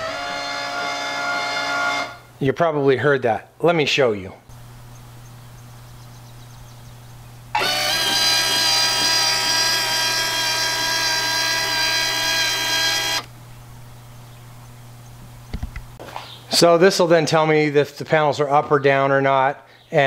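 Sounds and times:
electric motor whining: 0.0s - 2.2s, 6.1s - 13.4s.

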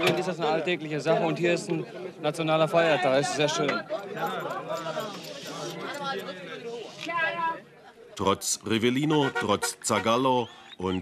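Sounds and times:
men talking: 0.0s - 7.1s, 8.2s - 11.0s.

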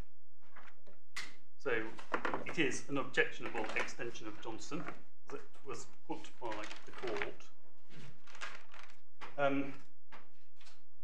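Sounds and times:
man speaking: 1.6s - 7.4s, 9.4s - 9.8s.

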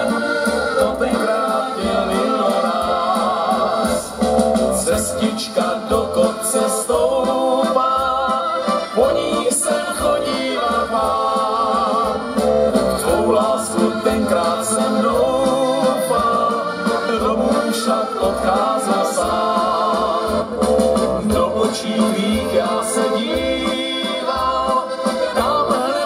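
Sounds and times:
electronic keyboard playing: 0.0s - 6.6s, 8.6s - 26.0s
accordions playing: 0.0s - 26.0s.

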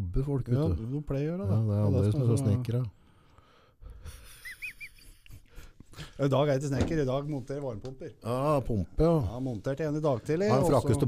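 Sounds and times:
man's stifled laugh: 4.0s - 5.8s.

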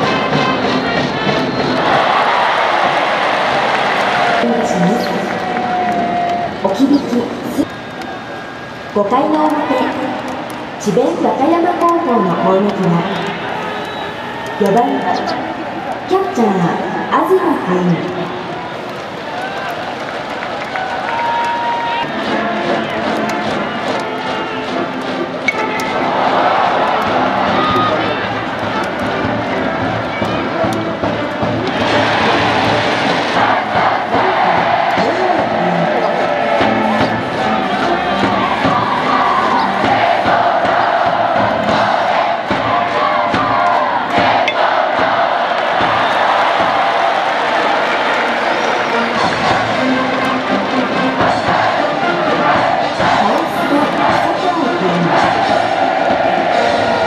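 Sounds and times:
brass band playing: 0.0s - 2.5s, 22.0s - 42.3s, 47.6s - 57.0s
crowd chanting and cheering: 0.0s - 57.0s.

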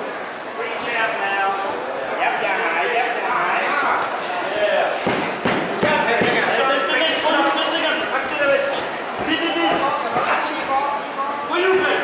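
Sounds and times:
murmur of crowd voices: 0.0s - 12.0s
boxing punches thudding: 5.0s - 6.5s.

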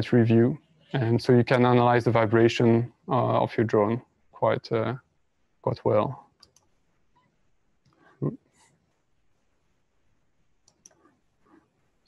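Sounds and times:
sharp computer clicks: 6.4s - 6.7s.

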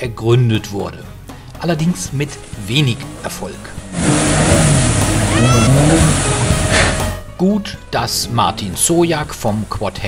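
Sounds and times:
wheels churning through mud: 1.8s - 7.2s, 8.5s - 10.0s
engine revving hard: 2.3s - 7.2s
high rising squeal: 2.8s - 7.1s.

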